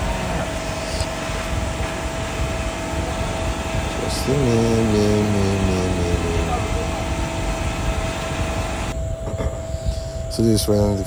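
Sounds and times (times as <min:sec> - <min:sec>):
mechanical whirring hiss: 0:00.0 - 0:11.0
man's drawn-out voice: 0:03.8 - 0:07.2.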